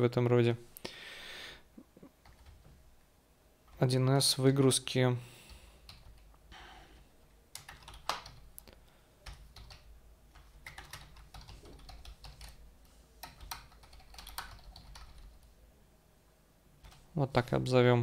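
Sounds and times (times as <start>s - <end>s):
typing on keyboard: 2.2s - 2.6s, 5.8s - 6.3s, 7.5s - 8.5s, 9.2s - 12.6s, 13.2s - 15.4s.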